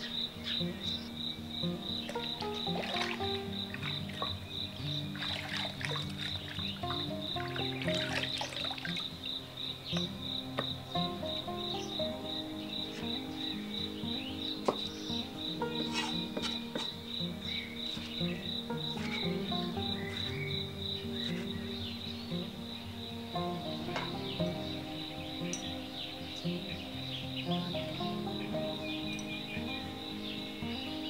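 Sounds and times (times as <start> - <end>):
insect chirping: 0.0 - 31.0
soft background music: 0.0 - 31.0
hands rubbing cucumbers in water: 5.2 - 6.6.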